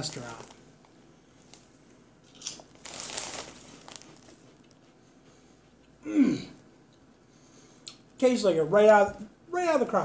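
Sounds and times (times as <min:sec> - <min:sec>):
potato chip crunching: 0:00.0 - 0:00.6, 0:01.4 - 0:04.8
foil bag crinkling: 0:00.0 - 0:04.8.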